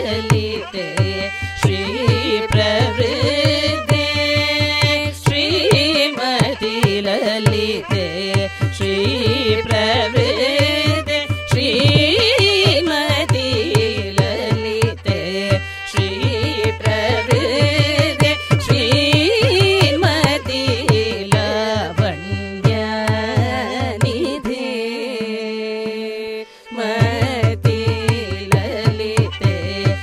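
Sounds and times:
violin: 0:00.0 - 0:30.0
women singing ornamented melody: 0:00.0 - 0:30.0.

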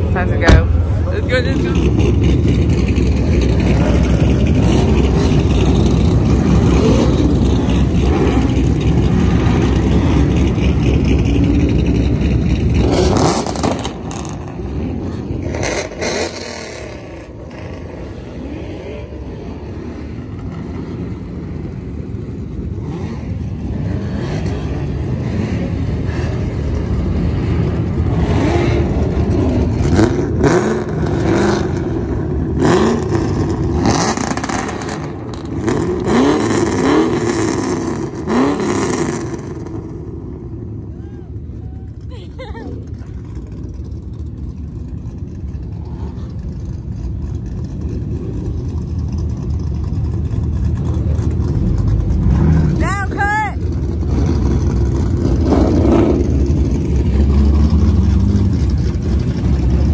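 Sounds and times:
car engines revving: 0:00.0 - 0:59.9.

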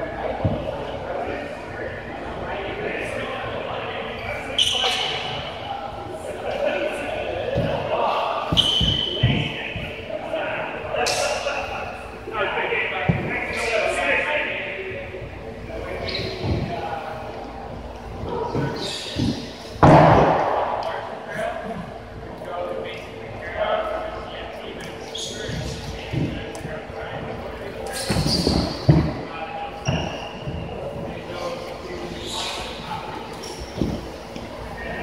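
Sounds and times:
players' voices echoing in gym: 0:00.0 - 0:35.0
loud sharp impact echoing: 0:19.1 - 0:21.2.

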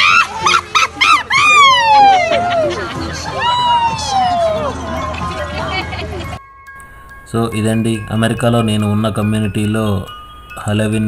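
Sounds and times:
people howling and whooping: 0:00.0 - 0:06.4.

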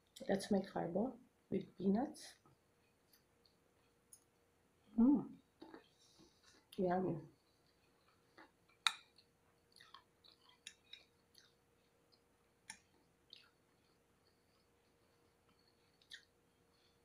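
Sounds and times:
soft chewing: 0:02.3 - 0:17.0.

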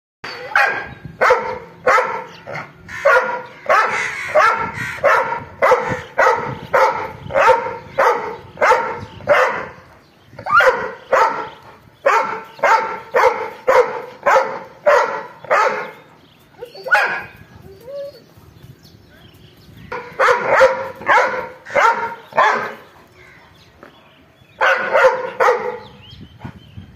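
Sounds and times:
large dog barking angrily: 0:00.4 - 0:16.1, 0:19.9 - 0:22.9, 0:24.6 - 0:26.0.

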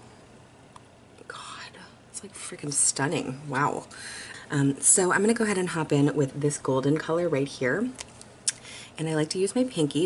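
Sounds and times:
woman whispering: 0:01.2 - 0:02.5.

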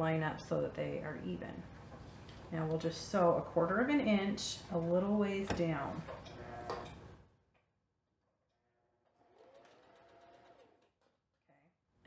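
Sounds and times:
sewing machine running: 0:09.3 - 0:10.7.

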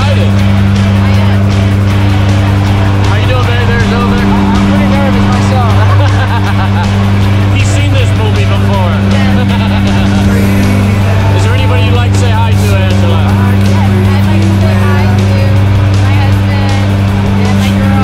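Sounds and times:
propeller plane engine drone: 0:00.0 - 0:18.0.

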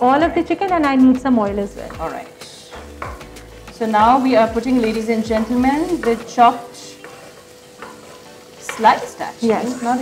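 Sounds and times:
chicken frying in a pan: 0:01.5 - 0:10.0
wooden spatula stirring: 0:01.8 - 0:10.0.

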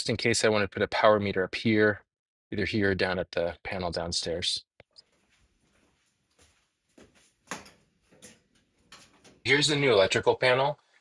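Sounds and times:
footsteps on hard floor: 0:05.0 - 0:09.4.

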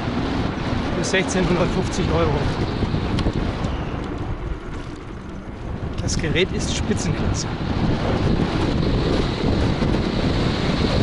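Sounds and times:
road and tyre rumble: 0:00.0 - 0:11.0
wind buffeting microphone: 0:00.0 - 0:11.0.

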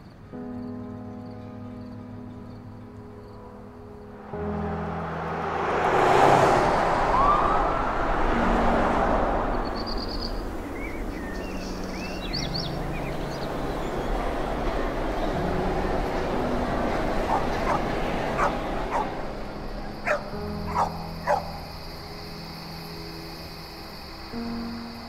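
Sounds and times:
low held musical notes: 0:00.3 - 0:23.2
steady rush of noise: 0:03.8 - 0:21.2
dog yelping: 0:18.4 - 0:19.1, 0:20.0 - 0:21.5.

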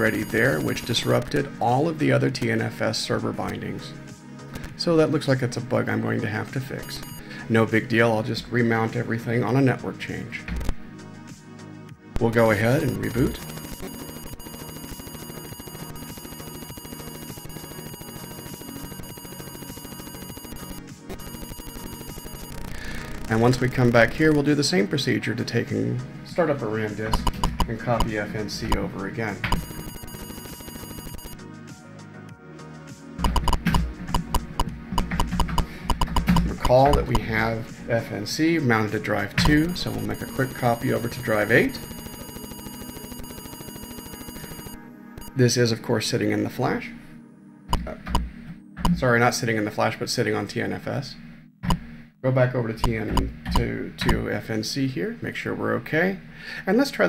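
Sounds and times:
computer loading noise buzzing: 0:12.7 - 0:24.4, 0:29.5 - 0:31.4, 0:39.4 - 0:45.4.

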